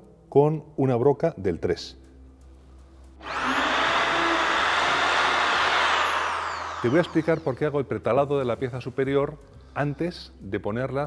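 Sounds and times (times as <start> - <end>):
electric drill whining: 3.2 - 7.2.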